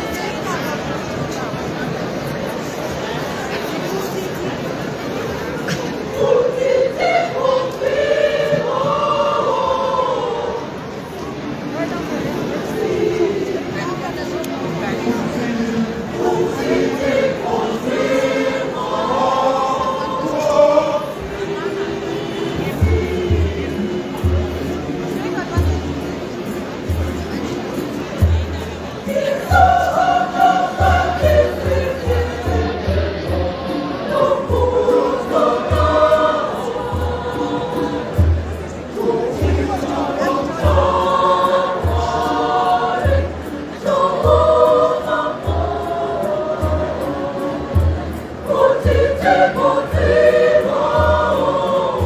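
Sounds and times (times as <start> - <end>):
choir singing: 5.2 - 28.0, 28.9 - 52.0.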